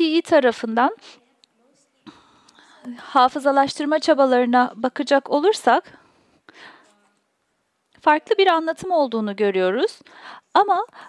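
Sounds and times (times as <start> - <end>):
woman speaking: 0.0 - 1.2, 2.0 - 6.0, 8.0 - 11.0
soft breath: 2.0 - 3.1, 5.9 - 7.1, 10.0 - 11.0.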